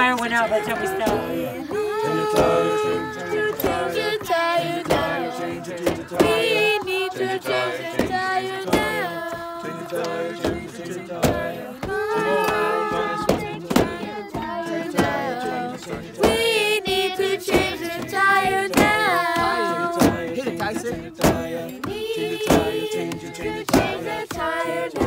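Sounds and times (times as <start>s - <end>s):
children singing a chant: 0.0s - 25.0s
sharp hand beat: 0.0s - 25.0s.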